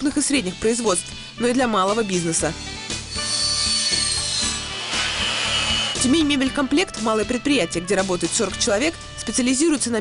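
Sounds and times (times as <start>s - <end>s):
miter saw blade whining: 2.6s - 6.1s.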